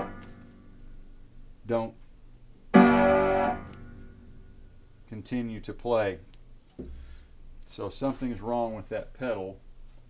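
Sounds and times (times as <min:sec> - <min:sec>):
piano chord struck: 0:02.8 - 0:04.5.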